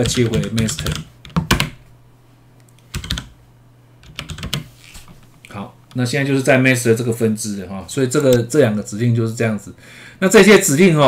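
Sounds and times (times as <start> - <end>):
computer keyboard keystrokes: 0.0 - 1.8, 2.8 - 3.3, 4.0 - 4.7.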